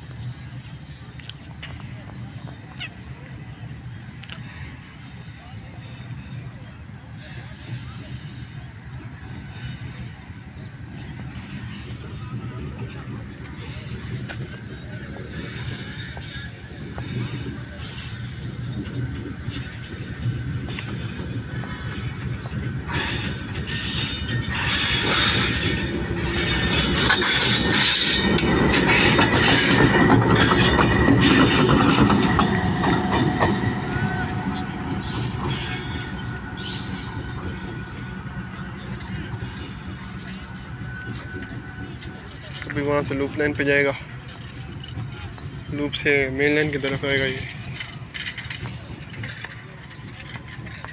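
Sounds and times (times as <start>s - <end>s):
locomotive engine rumble: 0.0s - 50.9s
wheels clicking over rail joints: 8.9s - 50.9s.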